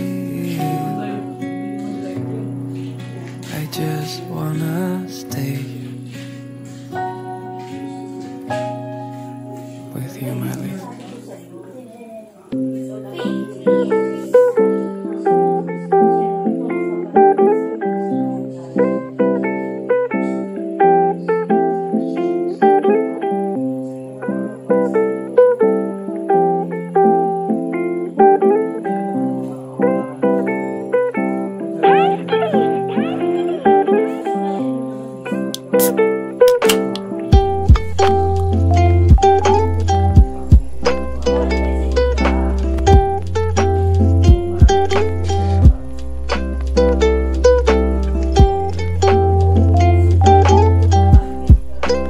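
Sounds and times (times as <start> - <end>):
plucked guitar melody: 0.0 - 52.0
bass line: 37.4 - 52.0.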